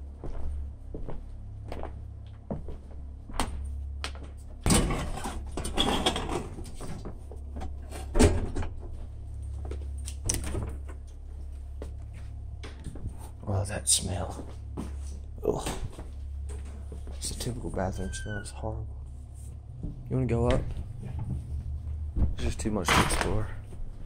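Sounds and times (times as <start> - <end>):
steady low hum: 0.0 - 24.0
handling knocks and clunks: 4.6 - 9.0, 22.1 - 23.8.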